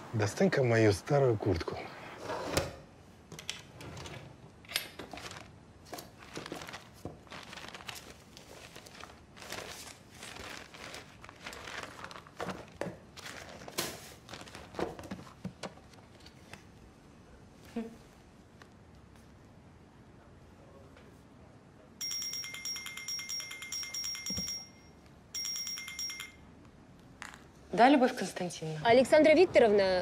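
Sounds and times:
paper rustling and crinkling: 5.0s - 16.6s.

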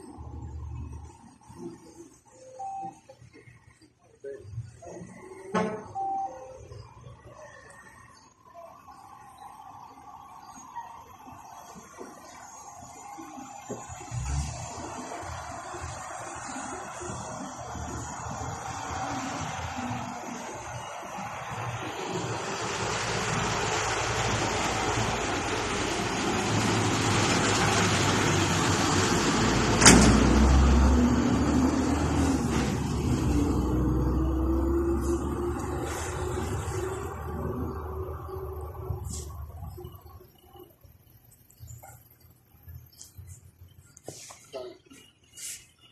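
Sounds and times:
passing vehicle engine and road noise: 8.4s - 40.8s.

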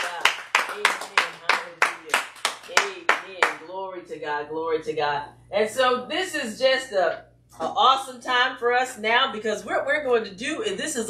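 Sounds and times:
woman clapping hands: 0.0s - 3.6s.

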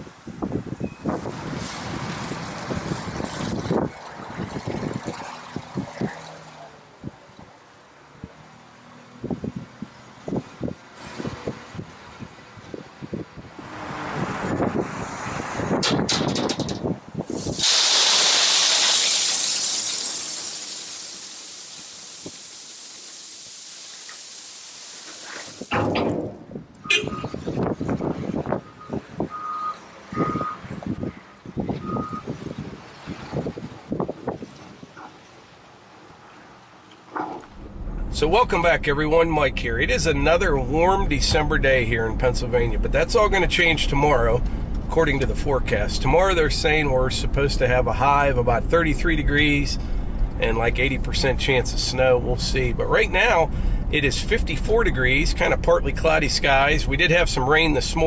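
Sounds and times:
reversing beeps: 0.8s - 1.1s, 26.8s - 27.4s, 28.6s - 30.6s, 31.8s - 32.3s
stone pouring into trailer: 17.3s - 26.3s.

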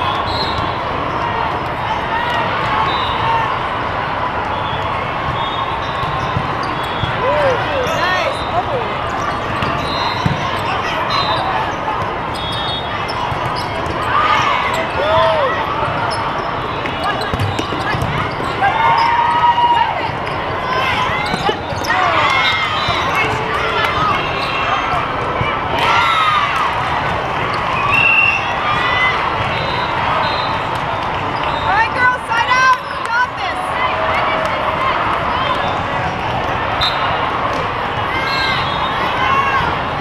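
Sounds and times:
many voices: 0.0s - 40.0s
balls hit and bouncing: 5.2s - 7.8s, 8.8s - 10.9s, 16.8s - 19.1s, 20.0s - 24.4s
shoe squeaks on court floor: 7.8s - 15.0s, 15.8s - 19.3s, 20.1s - 23.4s.

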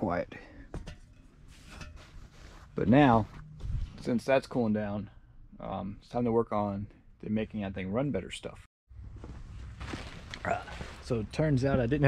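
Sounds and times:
footsteps: 0.7s - 4.1s, 9.1s - 11.2s.

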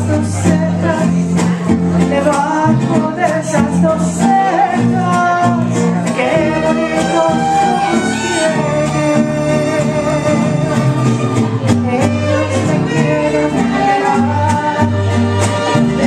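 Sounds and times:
mariachi band playing: 0.0s - 16.0s
woman singing: 0.0s - 16.0s.

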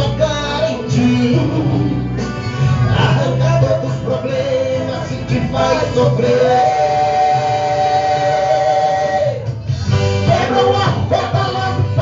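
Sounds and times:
gospel worship band playing: 0.0s - 12.0s.

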